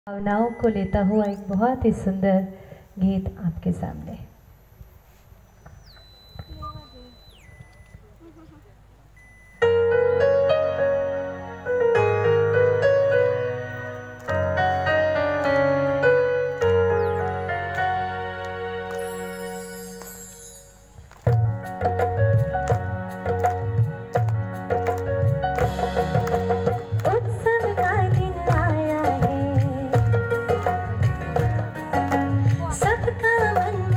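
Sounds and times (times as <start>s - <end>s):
keyboard music: 9.1s - 33.9s
song with drum beat: 21.3s - 33.9s
woman singing into microphone: 27.0s - 30.5s, 32.2s - 33.9s.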